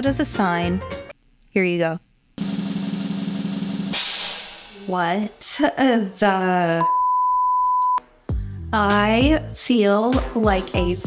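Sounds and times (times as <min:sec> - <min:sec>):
snare drum roll: 0:02.4 - 0:05.1
bright cymbal wash: 0:02.4 - 0:05.3.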